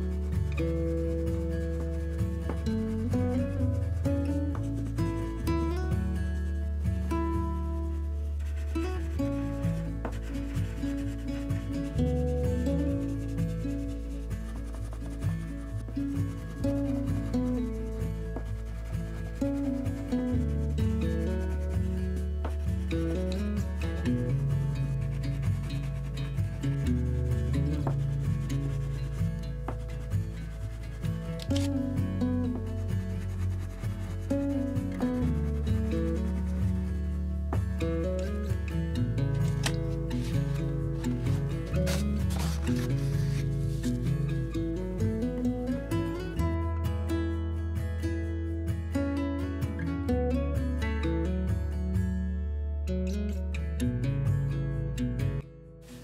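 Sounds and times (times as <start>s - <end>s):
crayons scrubbing on paper: 0.0s - 5.6s, 6.9s - 38.4s, 39.4s - 44.3s
background music with bass line: 0.0s - 56.0s.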